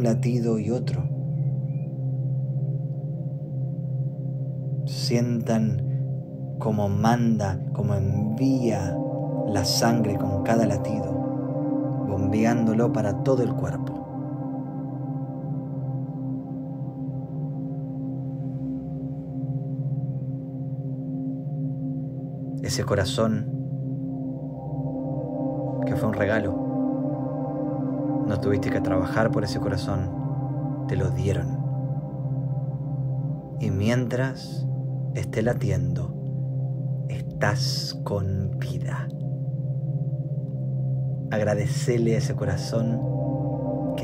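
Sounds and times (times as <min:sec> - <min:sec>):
low gong-like drone: 0:00.0 - 0:44.0
meditation music with singing bowls: 0:00.0 - 0:44.0
thin steady high tone: 0:00.0 - 0:44.0.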